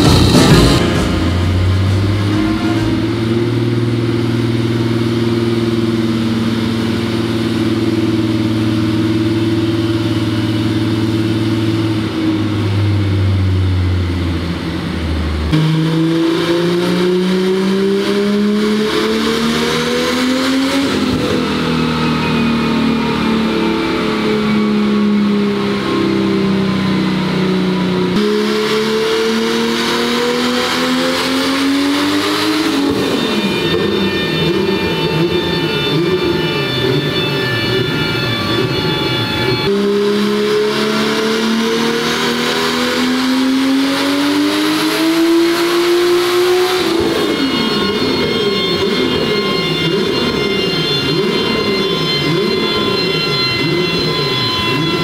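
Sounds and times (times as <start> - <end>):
turbocharged engine revving: 0.0 - 55.0.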